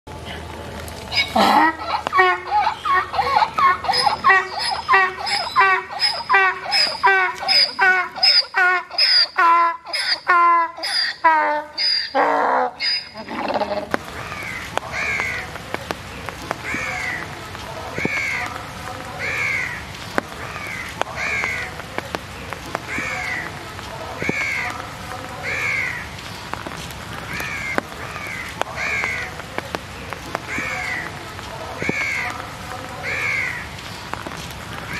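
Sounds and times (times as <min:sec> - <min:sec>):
donkey braying: 0:01.1 - 0:15.3
bird calling in falling notes: 0:01.1 - 0:15.5.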